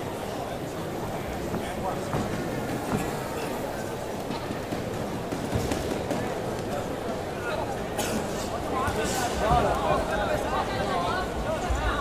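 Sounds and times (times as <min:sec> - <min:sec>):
crowd babble and shouts: 0:00.0 - 0:12.0.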